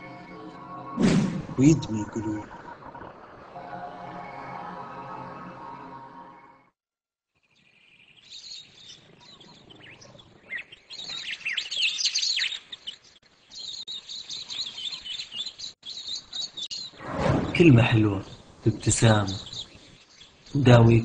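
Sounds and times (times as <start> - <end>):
birds chirping: 7.5 - 21.0.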